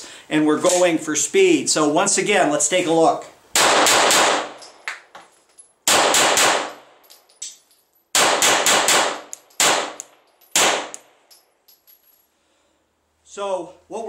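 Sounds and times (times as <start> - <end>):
pistol shots in bursts: 3.6 - 4.8, 5.8 - 7.0, 8.1 - 11.1
metallic pings of casings: 6.9 - 8.1, 9.3 - 12.4.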